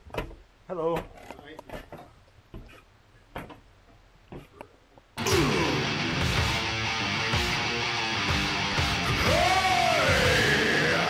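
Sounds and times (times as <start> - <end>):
footsteps on wooden stairs: 1.7 - 4.6
loud rock music: 5.2 - 11.0.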